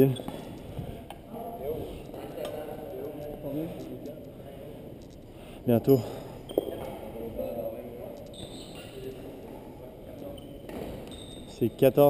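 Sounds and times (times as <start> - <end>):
distant people talking: 0.0 - 11.6.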